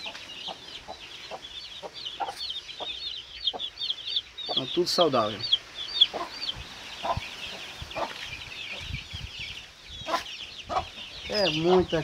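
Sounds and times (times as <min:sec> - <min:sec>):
chicks peeping: 0:00.0 - 0:12.0
hen clucking: 0:00.0 - 0:12.0.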